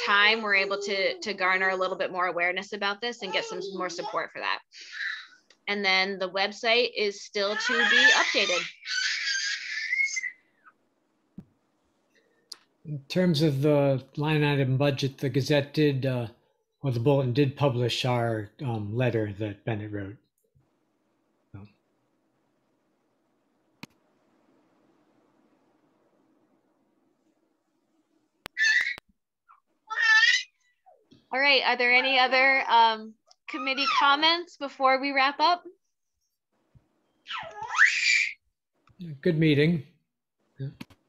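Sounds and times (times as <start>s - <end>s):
child squealing: 3.2s - 4.2s, 4.8s - 5.4s, 7.5s - 10.4s, 28.6s - 29.0s, 29.9s - 30.5s, 37.3s - 38.4s.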